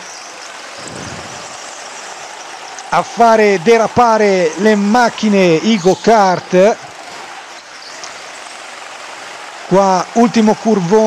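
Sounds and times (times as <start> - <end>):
go-kart engine drone: 0.0 - 11.0.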